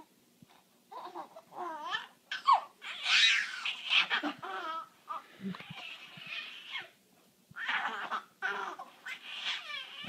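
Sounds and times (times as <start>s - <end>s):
baby squealing: 1.0s - 4.9s, 5.6s - 7.0s, 7.6s - 10.0s.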